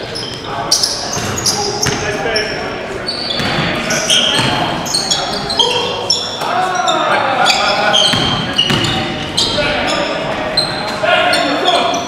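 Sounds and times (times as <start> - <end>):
players calling out: 0.0 - 12.0
sneaker squeaks: 0.0 - 12.0
basketball bouncing: 1.2 - 2.1, 3.4 - 3.7, 4.3 - 4.7, 8.1 - 9.0.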